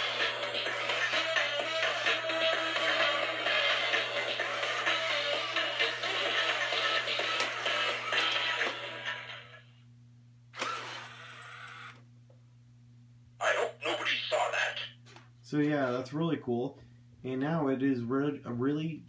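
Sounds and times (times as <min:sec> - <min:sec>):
toy robot dance music: 0:00.0 - 0:09.2.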